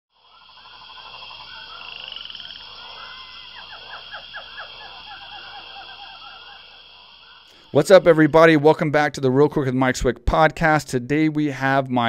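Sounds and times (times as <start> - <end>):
high insect drone: 0.1 - 8.8
frogs croaking and chirping: 0.1 - 9.3.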